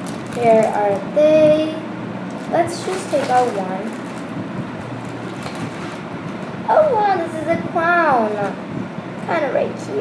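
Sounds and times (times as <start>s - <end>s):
plastic bag rustling: 0.0s - 1.1s, 2.3s - 6.6s
room hum: 0.0s - 10.0s.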